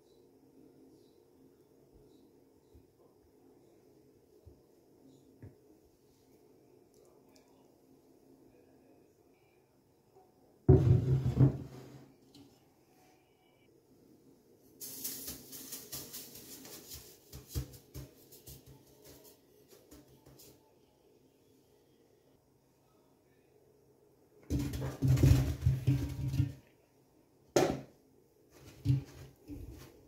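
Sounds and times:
sugar pouring into pot: 14.8s - 17.4s.

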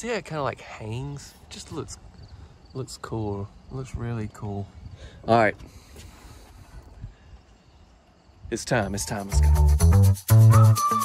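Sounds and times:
outdoor hiss and rumble: 0.0s - 8.9s.

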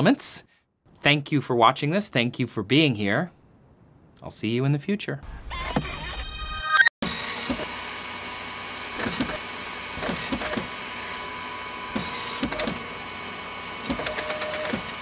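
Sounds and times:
mechanical hum: 7.0s - 15.0s
machine clicks: 13.8s - 15.0s.

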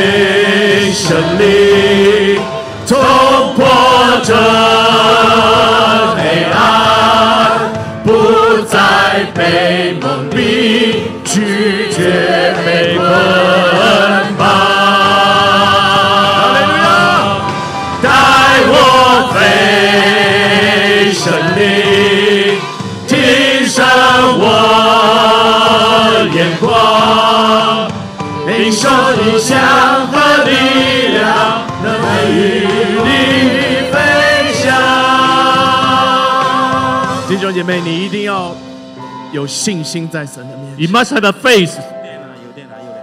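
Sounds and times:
group singing praise song: 0.0s - 37.6s
live band playing: 0.0s - 43.0s.

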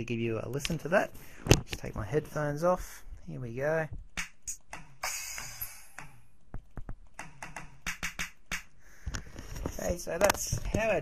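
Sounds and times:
drum and cymbal hits: 4.2s - 6.2s, 7.2s - 8.8s.

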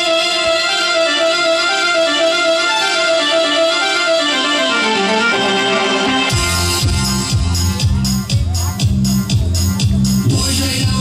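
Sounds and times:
instrumental music with ringing notes: 0.0s - 10.5s.

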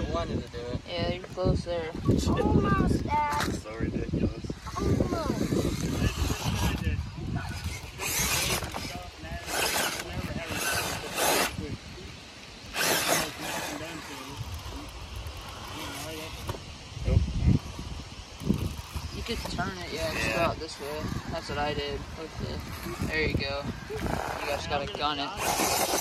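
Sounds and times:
tyres scrabbling on rock: 5.3s - 11.6s, 12.7s - 16.7s, 22.3s - 26.0s
electric motor whine: 12.6s - 16.8s.

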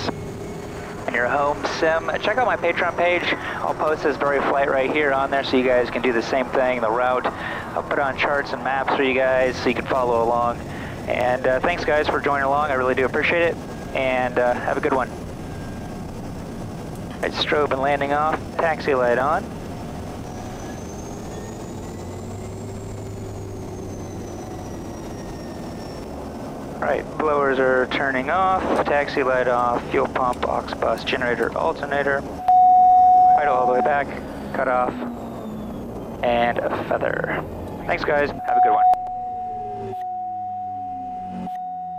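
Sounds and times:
low hum: 0.0s - 41.9s
turbine whine: 0.0s - 41.9s
turboprop engine droning: 0.0s - 41.9s
steady high tone: 31.9s - 36.4s, 37.9s - 41.9s.

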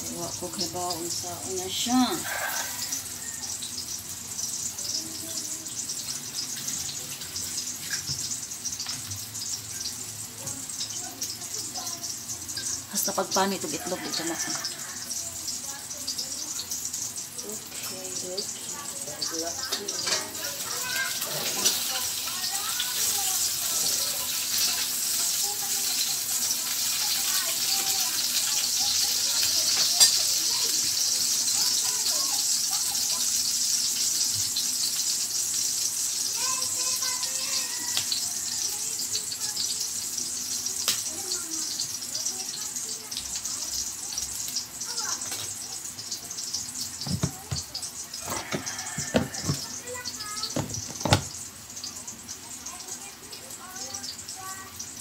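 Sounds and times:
kitchen hiss: 0.0s - 55.0s.

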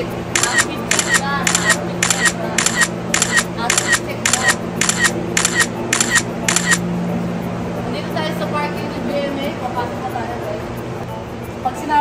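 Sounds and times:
steady low hum: 0.0s - 12.0s
camera shutter clicks: 0.4s - 6.8s.

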